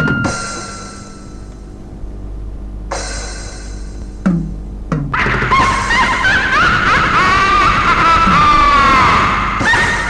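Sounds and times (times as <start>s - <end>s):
distorted guitar wall: 0.0s - 10.0s.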